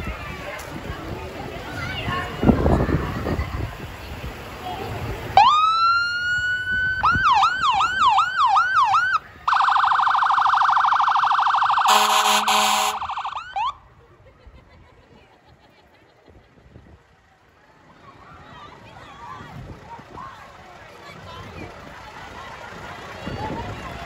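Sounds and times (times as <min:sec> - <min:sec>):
fire engine electronic siren: 0:05.4 - 0:13.8
short horn blasts: 0:11.9 - 0:13.0.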